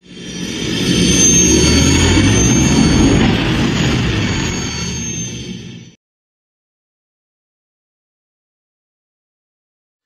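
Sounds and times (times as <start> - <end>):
spaceship engine rumble: 0.0 - 6.0
thin high whine: 0.0 - 6.0.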